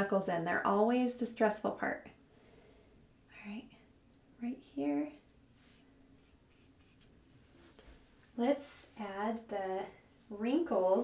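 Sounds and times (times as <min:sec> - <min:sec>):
paintbrush scratching on canvas: 0:05.6 - 0:07.8.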